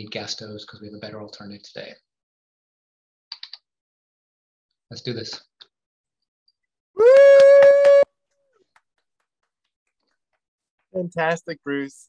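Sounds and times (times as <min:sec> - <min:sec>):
person cheering woo: 0:07.0 - 0:08.1.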